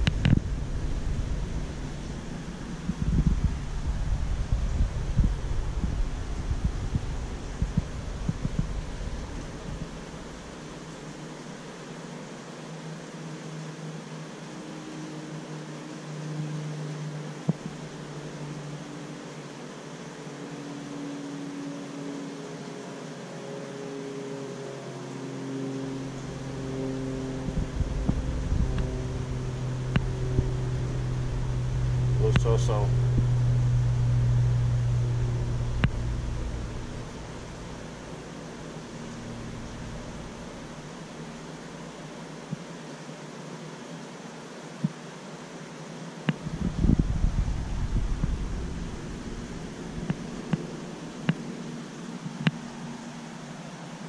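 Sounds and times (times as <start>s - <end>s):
mechanical hum with rumbling: 0.0s - 54.0s.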